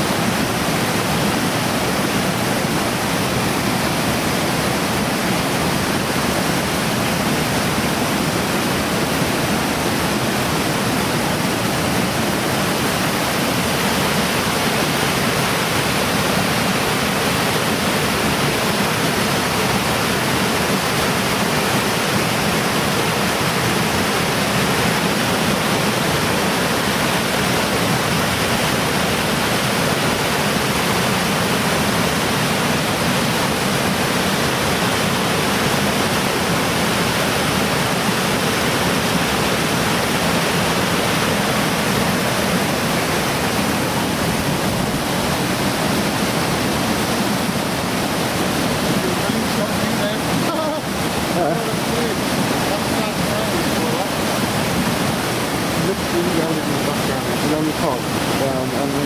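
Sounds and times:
mountain stream rushing over rocks: 0.0 - 59.0.

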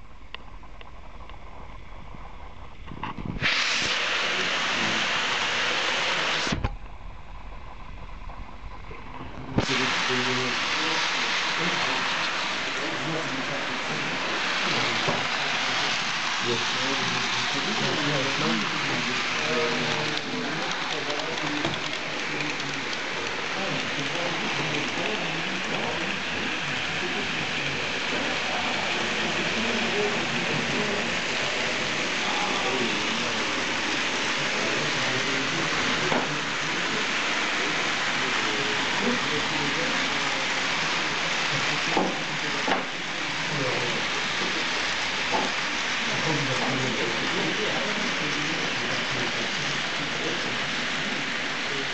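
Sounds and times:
model train wheels rolling: 7.3 - 51.9
faint murmur of voices: 8.8 - 51.9.

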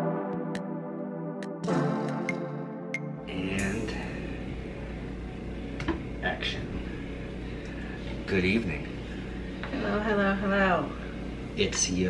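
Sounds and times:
indoor room hum: 3.1 - 12.0.

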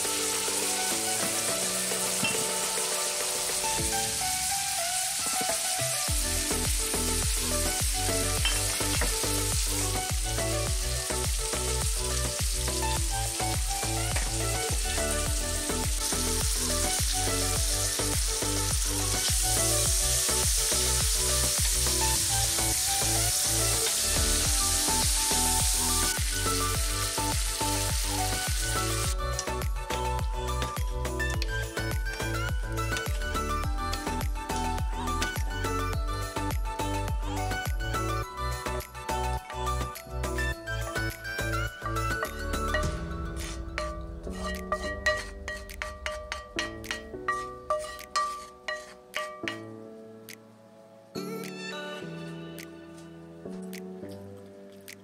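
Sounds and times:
food sizzling in a pan: 0.0 - 31.0, 31.6 - 49.9
background music: 0.0 - 55.0
wooden spoon scraping a pan: 43.4 - 49.6.

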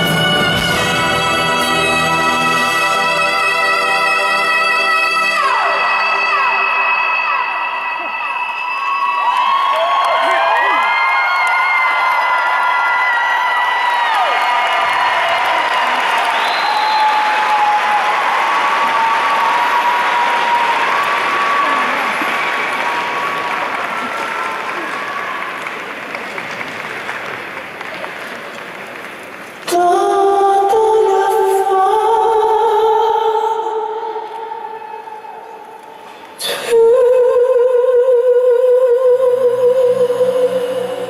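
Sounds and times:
high-pitched screams and shouts: 5.7 - 25.7
audience applauding and cheering: 6.5 - 30.0.

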